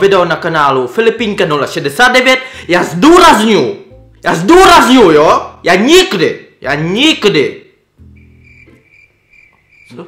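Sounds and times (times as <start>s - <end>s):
crickets chirping: 8.0s - 10.0s.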